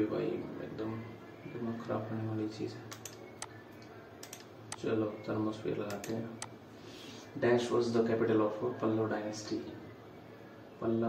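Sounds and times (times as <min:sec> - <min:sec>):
computer mouse clicks: 0:02.9 - 0:04.8, 0:05.9 - 0:06.5.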